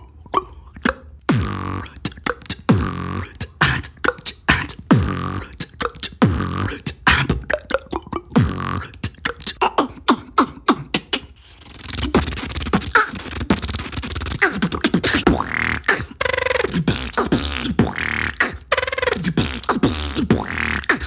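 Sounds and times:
person beatboxing: 0.0s - 21.0s.

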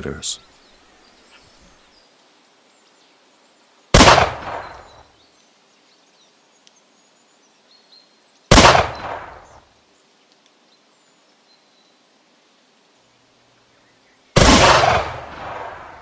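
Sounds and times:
rifle shots echoing: 3.9s - 5.0s, 8.5s - 9.6s, 14.4s - 16.0s.

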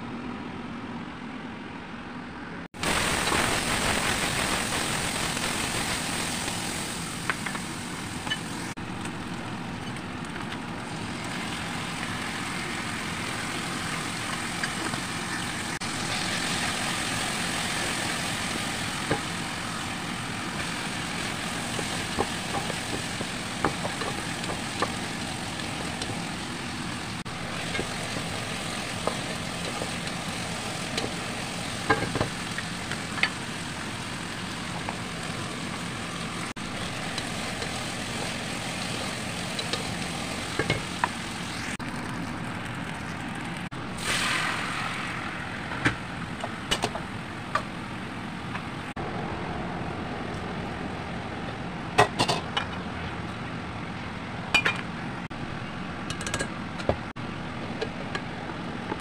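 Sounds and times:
food sizzling in a pot: 2.8s - 9.5s, 10.8s - 42.3s, 43.6s - 48.0s.

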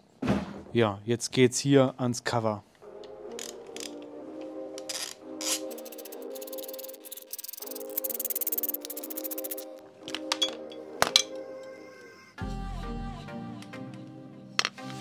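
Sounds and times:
background music: 2.7s - 15.0s
hand ratchet clicking: 4.8s - 9.7s.

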